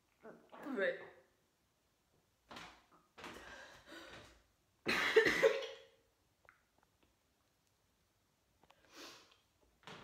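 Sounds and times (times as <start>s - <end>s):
woman coughing harshly: 4.9s - 5.9s.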